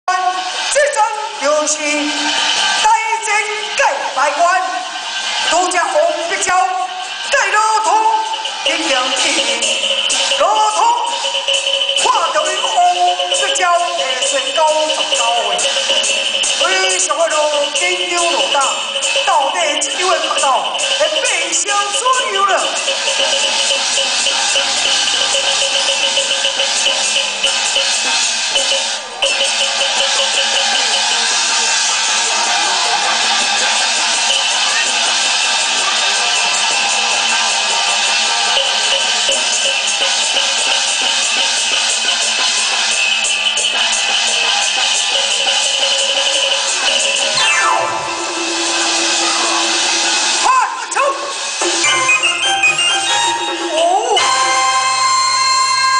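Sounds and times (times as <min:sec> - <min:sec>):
busy percussion: 0:00.1 - 0:55.9
gongs and cymbals clashing: 0:00.3 - 0:55.9
low held instrumental tone: 0:47.3 - 0:50.4
rising and falling calls: 0:47.3 - 0:50.4
opera accompaniment music: 0:47.3 - 0:55.9.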